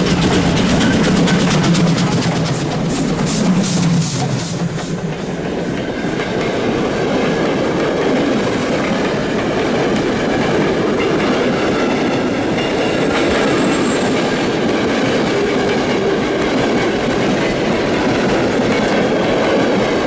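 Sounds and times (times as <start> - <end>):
train wheels clattering over rail joints: 0.0 - 20.0
high wheel squeal: 12.8 - 14.5.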